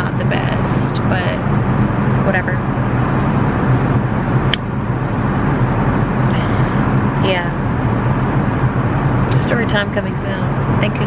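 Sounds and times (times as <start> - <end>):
airliner cabin drone: 0.0 - 11.0.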